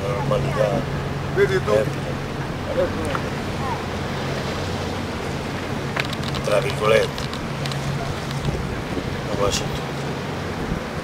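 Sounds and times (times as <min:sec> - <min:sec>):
sea noise: 0:00.0 - 0:11.0
wind: 0:00.0 - 0:11.0.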